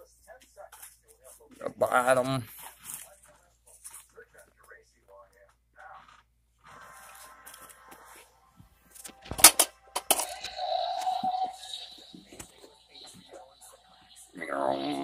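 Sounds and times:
sustained electronic tone: 10.2 - 15.0.

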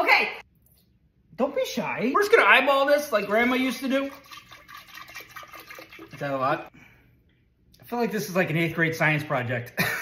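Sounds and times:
milk pouring into glass jar: 3.2 - 6.5.

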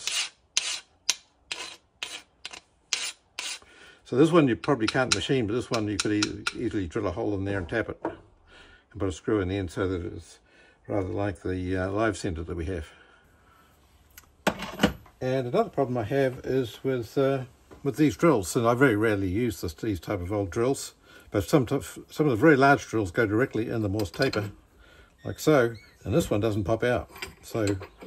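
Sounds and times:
hand file on steel: 0.0 - 3.7
steel tooling clinking: 27.0 - 28.0.

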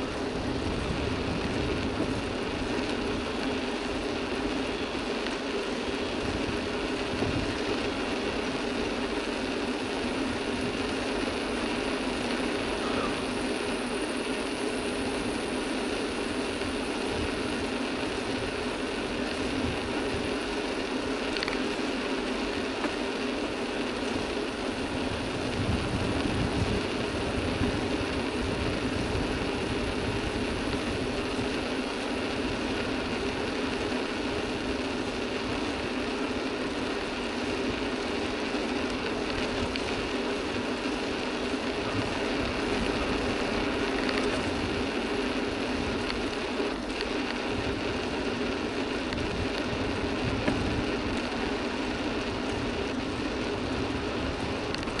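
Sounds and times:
mountain bike riding on asphalt: 0.0 - 55.0.

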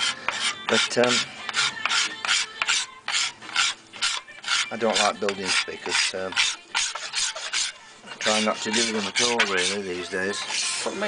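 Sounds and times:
scraper scraping wood: 0.0 - 11.0.

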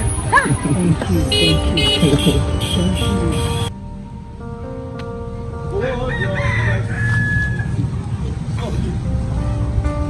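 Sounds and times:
rooster crowing: 6.0 - 7.8.

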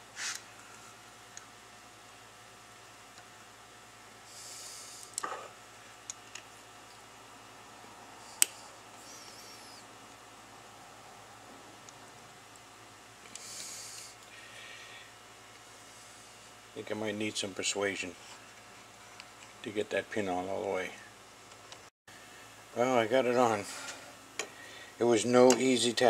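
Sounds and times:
soft hisses: 0.1 - 0.5.

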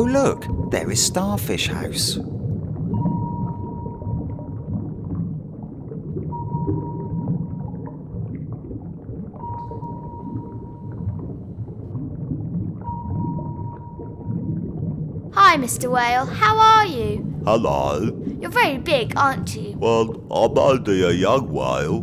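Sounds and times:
low underwater rumble: 0.0 - 22.0.

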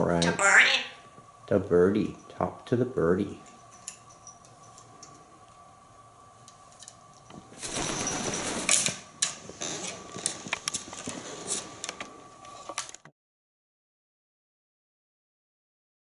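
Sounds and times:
parrot wings fluttering: 7.3 - 11.8.

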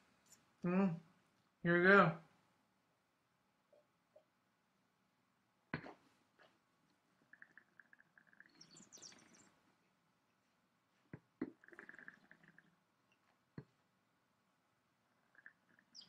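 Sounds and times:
gurgling slurps of wine: 11.5 - 12.7.

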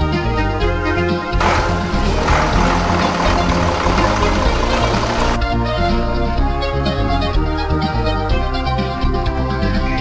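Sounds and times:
background music: 0.0 - 10.0
lorry diesel engine running: 1.4 - 5.5.

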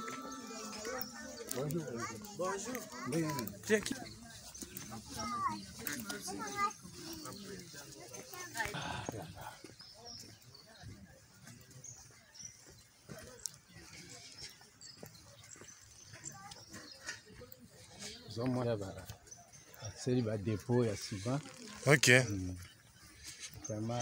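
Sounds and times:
faint voices: 0.0 - 24.0.

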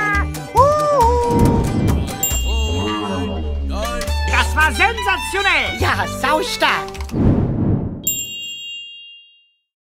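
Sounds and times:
music: 0.0 - 7.2
bell-like ding: 2.1 - 5.0, 8.0 - 9.7.

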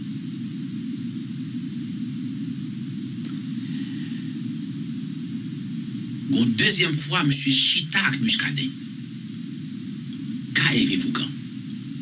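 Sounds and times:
faint hiss: 0.0 - 12.0
low hum-like rumble: 0.0 - 12.0.

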